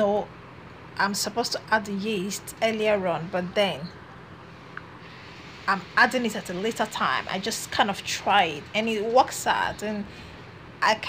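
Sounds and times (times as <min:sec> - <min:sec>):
woman talking: 0:00.0 - 0:00.3, 0:01.0 - 0:04.0, 0:05.6 - 0:10.2, 0:10.8 - 0:11.0
low background hiss: 0:00.0 - 0:11.0.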